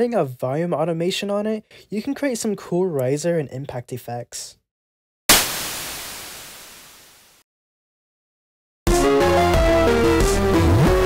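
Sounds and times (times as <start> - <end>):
synth white noise impact: 5.3 - 7.4.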